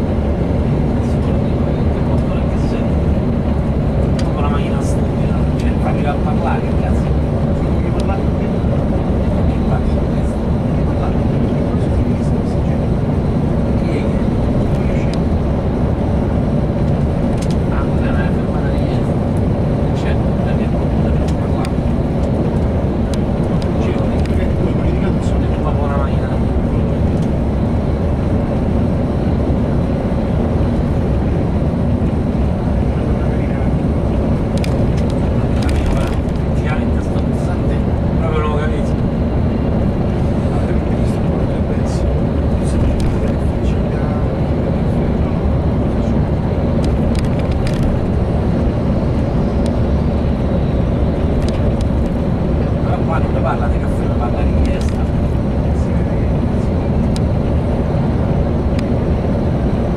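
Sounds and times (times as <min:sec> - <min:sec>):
coach engine rumble: 0:00.0 - 0:59.9.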